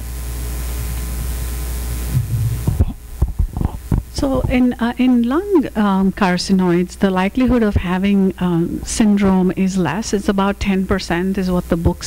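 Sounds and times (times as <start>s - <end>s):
electrical hum with hiss: 0.0s - 12.0s
soft low thumps: 2.1s - 4.8s.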